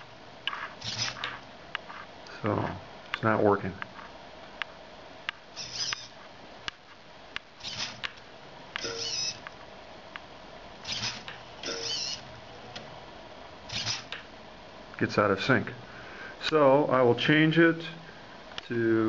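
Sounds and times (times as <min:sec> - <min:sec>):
small servo whirring: 0:00.5 - 0:01.4, 0:05.6 - 0:06.2, 0:07.6 - 0:08.1, 0:08.8 - 0:09.4, 0:10.8 - 0:12.2, 0:13.7 - 0:14.2
sharp clicks: 0:00.5 - 0:01.9, 0:05.3 - 0:06.1, 0:06.7 - 0:09.6, 0:10.2 - 0:12.2, 0:13.7 - 0:14.3.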